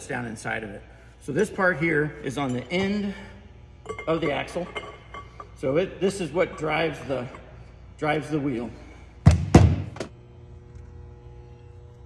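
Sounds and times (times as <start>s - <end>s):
quiet background hum: 0.0s - 12.0s.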